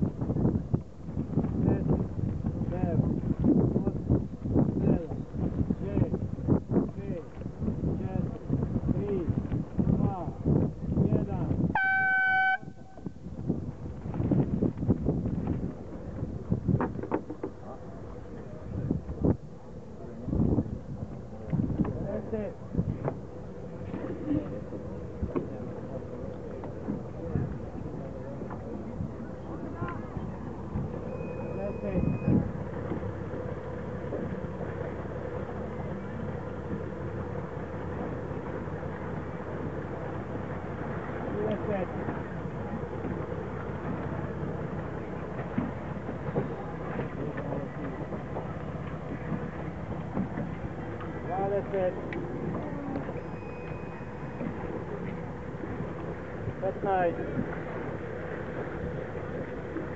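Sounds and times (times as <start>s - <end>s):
motorboat engine running: 0.0s - 59.9s
air horn blast: 11.7s - 13.1s
voices talking: 23.8s - 58.2s.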